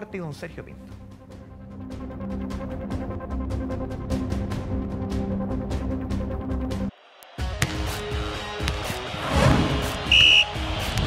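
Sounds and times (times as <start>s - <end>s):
loud high-pitched tone: 10.0s - 10.6s.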